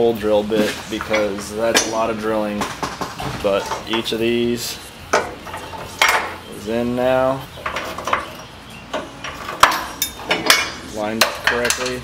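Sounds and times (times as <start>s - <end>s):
hand tool tapping on metal: 8.9s - 12.0s.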